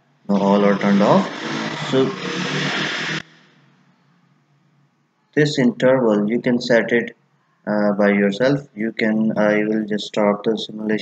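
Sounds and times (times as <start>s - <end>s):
steady rushing noise: 0.3s - 3.6s.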